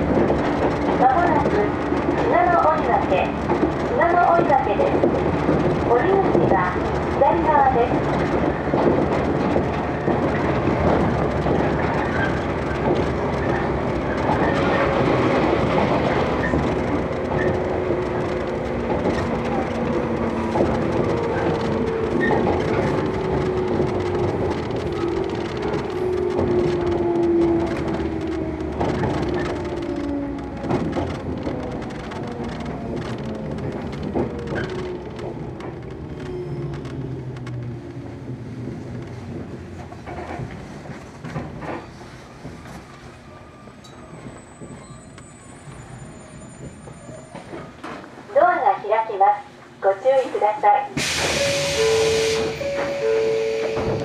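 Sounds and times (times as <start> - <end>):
train running noise: 0.0 - 54.0
wheels clacking on rail joints: 0.0 - 54.0
train motor whine: 51.0 - 54.0.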